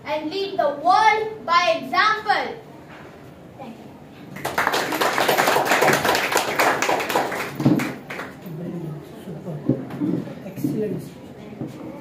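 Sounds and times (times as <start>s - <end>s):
audience clapping: 4.3s - 8.4s.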